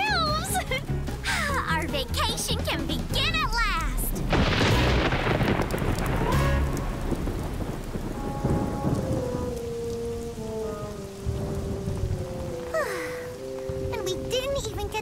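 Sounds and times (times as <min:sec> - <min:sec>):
rain falling: 0:00.0 - 0:15.0
deep rumble of thunder: 0:03.9 - 0:15.0.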